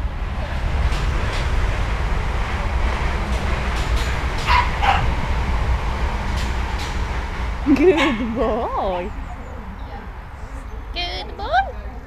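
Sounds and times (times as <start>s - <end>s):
dog barks: 4.4s - 5.1s.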